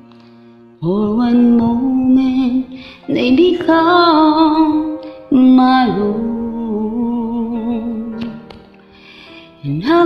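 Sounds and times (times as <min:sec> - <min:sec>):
karaoke backing track: 0:00.8 - 0:10.0.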